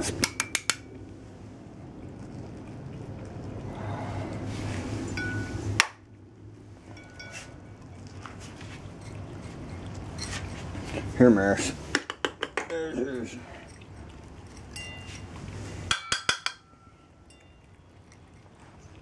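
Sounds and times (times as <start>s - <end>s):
light metallic clinks: 5.1s - 5.6s, 6.9s - 7.7s, 13.1s - 15.3s, 15.9s - 17.8s.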